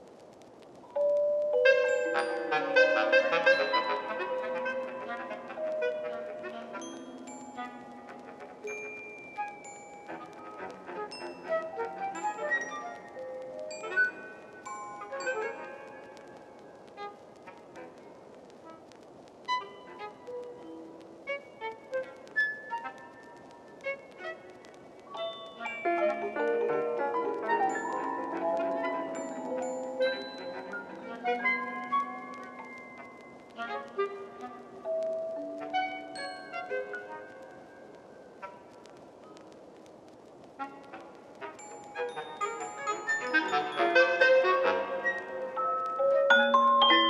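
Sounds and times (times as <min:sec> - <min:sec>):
faint hiss: 0:00.0 - 0:47.0
sustained reedy synth tones: 0:18.6 - 0:39.5.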